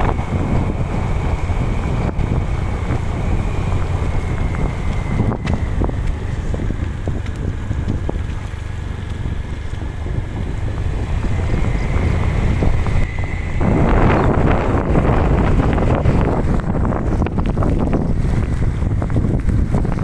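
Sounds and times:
wind rushing over microphone: 0.0 - 20.0.

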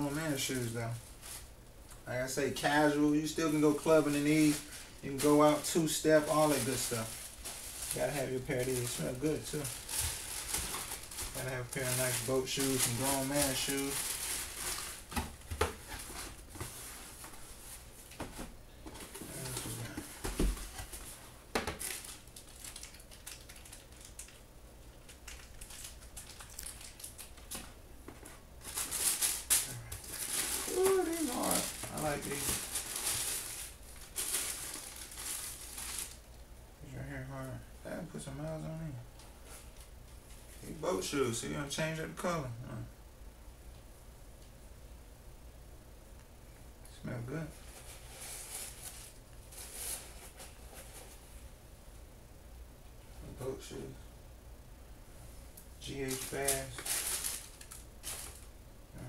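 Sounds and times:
tissue paper crinkling: 2.6 - 18.2, 19.2 - 24.4, 25.0 - 27.7, 28.6 - 36.2, 47.5 - 51.2, 55.8 - 58.5.

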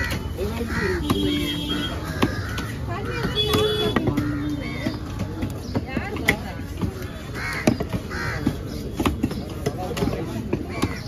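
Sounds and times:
crow cawing: 0.0 - 3.2, 7.3 - 8.7
cleaver chopping on wooden block: 1.0 - 11.0.

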